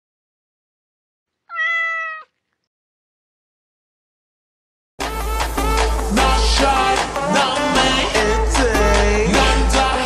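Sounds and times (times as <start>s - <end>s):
cat meow: 1.5s - 2.5s.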